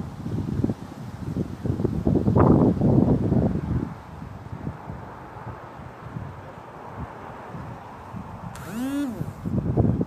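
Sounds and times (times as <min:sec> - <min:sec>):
wind buffeting microphone: 0:00.0 - 0:10.0
short rising and falling tone: 0:08.6 - 0:09.5.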